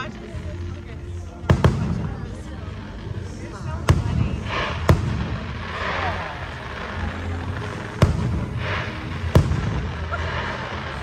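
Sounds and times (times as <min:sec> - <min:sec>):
fireworks bursting: 0:00.0 - 0:11.0.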